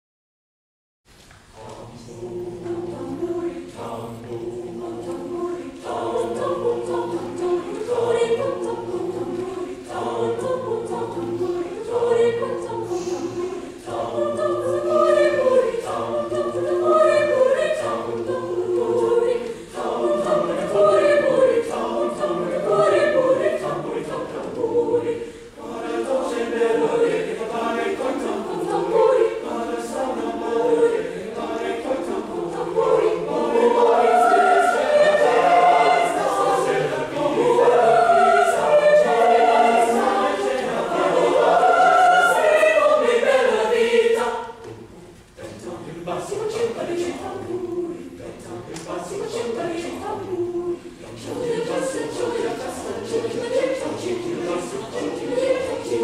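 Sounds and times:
choir singing in parts: 1.3 - 56.0.

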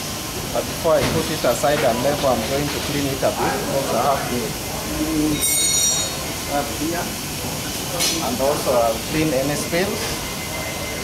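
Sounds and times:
steady background hiss: 0.0 - 11.0
short high-pitched squeal: 5.3 - 6.3.

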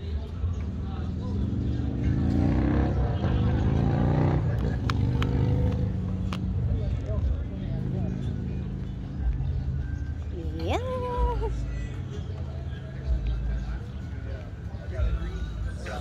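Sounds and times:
car engine revving: 1.2 - 6.6.

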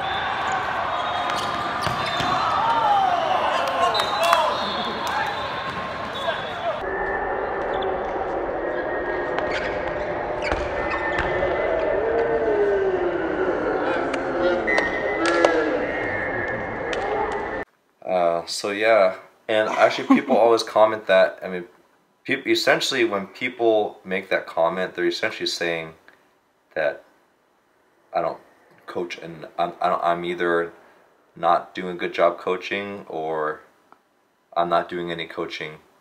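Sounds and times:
volleyball hits: 0.0 - 6.8
players shouting and calling: 0.0 - 6.9.

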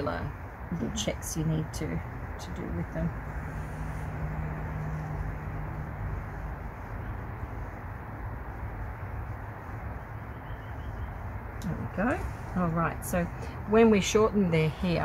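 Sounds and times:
low steady hum: 0.0 - 15.0
outdoor background rumble: 0.0 - 15.0.

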